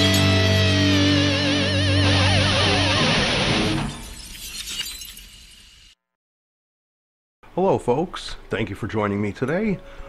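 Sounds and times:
glass shattering: 3.7s - 5.8s.

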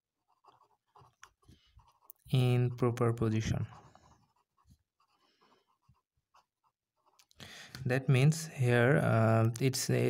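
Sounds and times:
felt-tip pen writing on paper: 0.2s - 2.2s, 3.7s - 7.2s.

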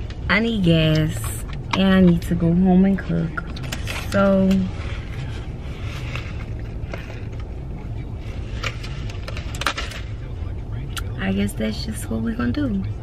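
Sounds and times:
car engine rumble in cabin: 0.0s - 13.0s.

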